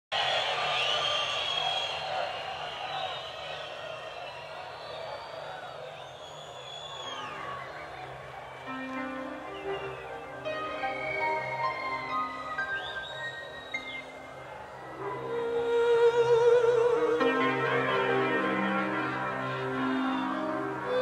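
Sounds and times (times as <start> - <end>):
whistles and whoops: 0.1 - 17.4
crowd cheering: 0.1 - 21.0
instrument playing held notes: 8.7 - 21.0.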